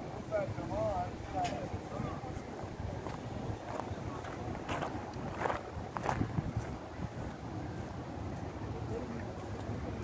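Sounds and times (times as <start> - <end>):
footsteps on pavement: 0.0 - 10.0
wind rumbling on microphone: 0.0 - 10.0.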